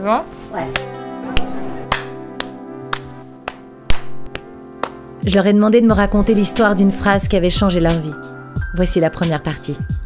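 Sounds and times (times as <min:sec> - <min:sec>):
background music: 0:00.0 - 0:10.0
hand claps: 0:00.7 - 0:05.5.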